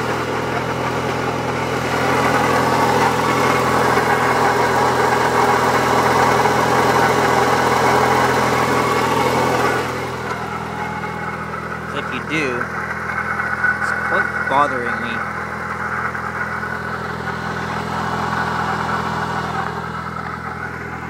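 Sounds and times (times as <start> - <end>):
bearing grinding: 0.0 - 21.0
car engine idling: 0.0 - 21.0.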